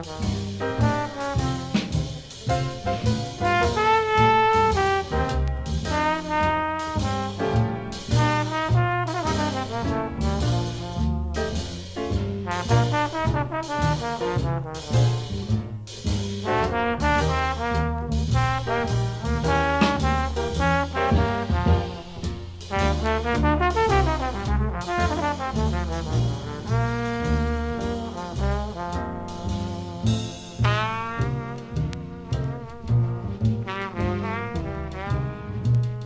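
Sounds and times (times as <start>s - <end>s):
dixieland jazz band playing: 0.0s - 36.0s.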